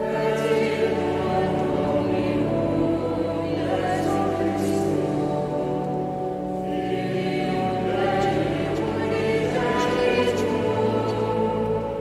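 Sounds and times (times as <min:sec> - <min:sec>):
choir singing sacred music: 0:00.0 - 0:12.0.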